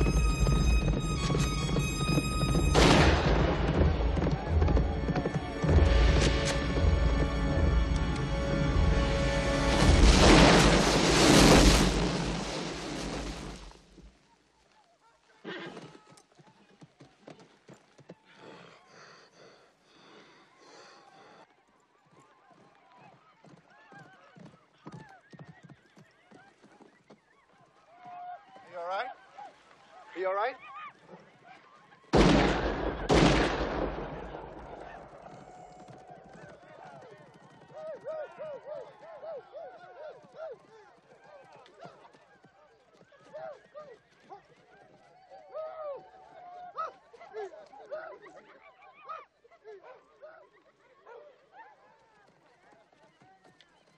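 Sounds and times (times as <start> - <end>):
horse hooves clopping: 0.0 - 9.9, 14.8 - 18.8, 21.5 - 32.0, 34.4 - 48.1, 51.3 - 53.9.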